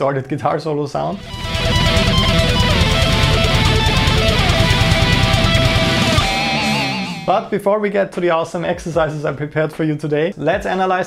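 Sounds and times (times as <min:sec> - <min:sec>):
distorted electric guitar lead: 0:01.2 - 0:07.6.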